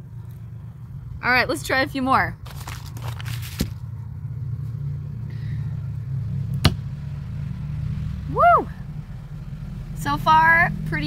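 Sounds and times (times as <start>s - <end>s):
off-road vehicle engines rumbling: 0.0s - 11.0s.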